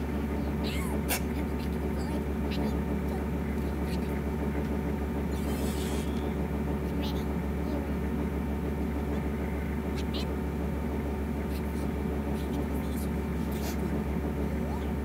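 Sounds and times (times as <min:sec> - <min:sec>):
low electrical hum: 0:00.0 - 0:15.0
cartoon character voices: 0:00.3 - 0:04.3, 0:06.8 - 0:08.0, 0:10.0 - 0:10.4, 0:11.5 - 0:15.0.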